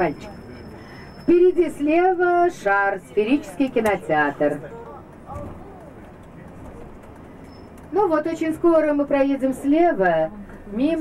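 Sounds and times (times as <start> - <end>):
coach engine and road rumble: 0.0 - 11.0.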